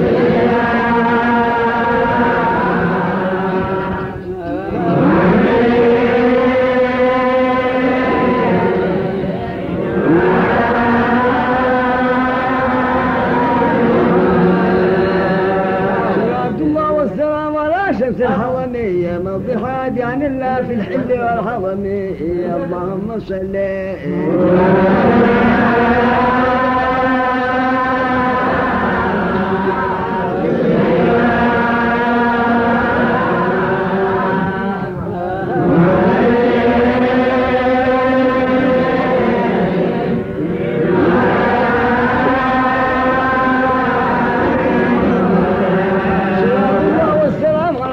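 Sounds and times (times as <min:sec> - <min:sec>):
background chanting voices: 0:00.0 - 0:47.9.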